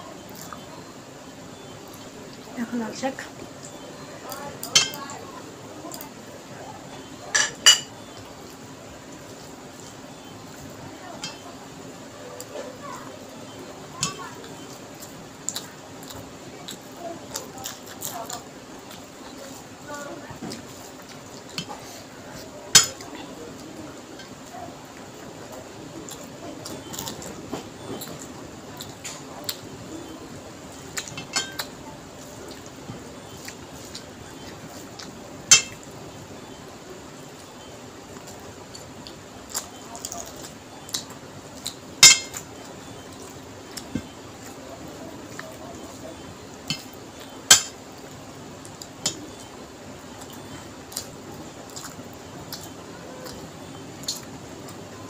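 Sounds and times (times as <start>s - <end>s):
soft chewing: 0.0s - 55.0s.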